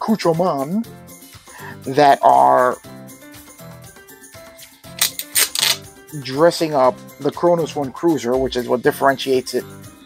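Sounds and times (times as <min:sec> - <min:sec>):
soft background music: 0:00.0 - 0:10.0
plastic sleeve crinkling: 0:05.0 - 0:05.8.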